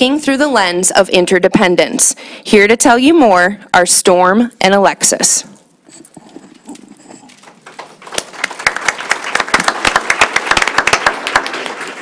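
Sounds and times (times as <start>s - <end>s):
audience applause: 7.1s - 12.0s.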